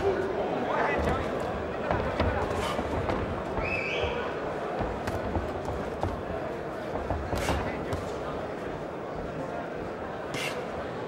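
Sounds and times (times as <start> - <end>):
crowd voices and shouts: 0.0 - 11.0
feet on ring canvas: 0.9 - 9.3
punches thudding: 1.0 - 8.4.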